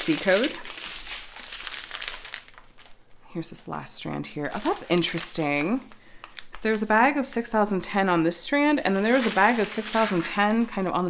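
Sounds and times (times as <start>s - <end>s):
plastic bags crinkling: 0.0s - 3.2s, 4.4s - 6.9s, 8.8s - 11.0s.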